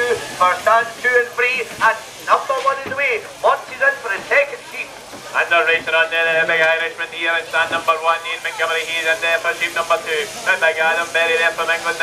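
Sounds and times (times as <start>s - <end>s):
man commentating: 0.0s - 12.0s.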